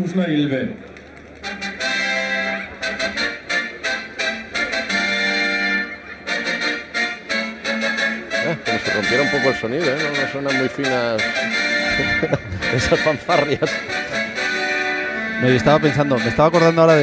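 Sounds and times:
fanfare music: 0:01.4 - 0:17.0.

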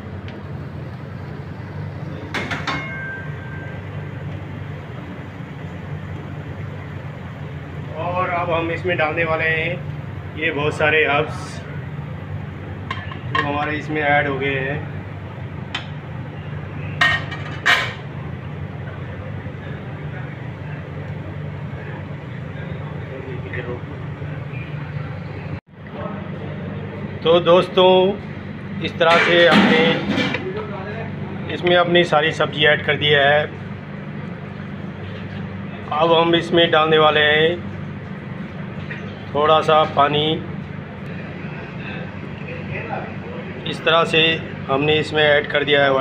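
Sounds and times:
low hum with soft hiss: 0:00.0 - 0:46.0.

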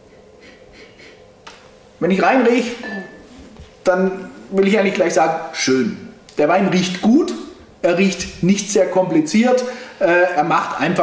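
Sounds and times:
person sniffing: 0:00.4 - 0:01.2, 0:03.2 - 0:04.5.

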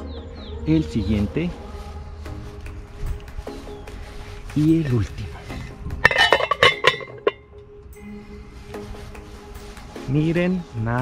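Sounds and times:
metal hubcap clinking: 0:06.0 - 0:07.5.

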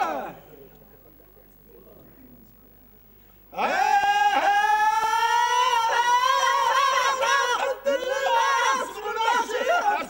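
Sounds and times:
man singing a long held note: 0:03.6 - 0:10.0.

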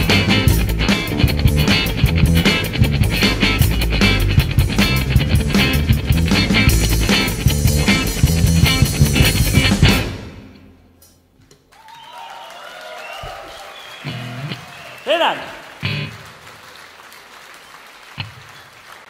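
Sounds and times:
rock band playing: 0:00.0 - 0:11.1, 0:14.0 - 0:16.3
audience applauding and cheering: 0:11.6 - 0:19.0
loud whoop: 0:11.7 - 0:15.6.

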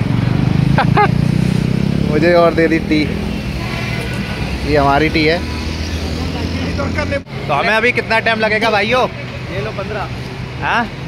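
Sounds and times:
motorcycle engine running: 0:00.0 - 0:08.3.

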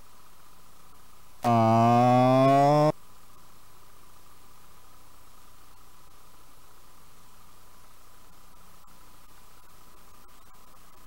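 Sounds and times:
starting gate horn: 0:01.4 - 0:02.9.

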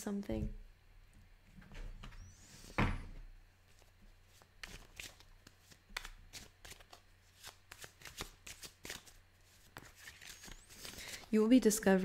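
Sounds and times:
cards being shuffled: 0:03.7 - 0:11.4.

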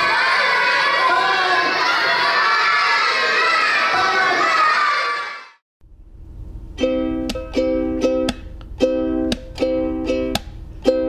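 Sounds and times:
children shouting and cheering: 0:00.0 - 0:05.6.

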